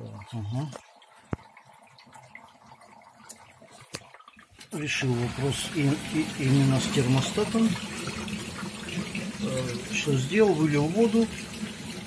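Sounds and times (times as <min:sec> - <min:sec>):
water sloshing and trickling: 0:00.0 - 0:12.0
dishwasher running: 0:04.8 - 0:12.0.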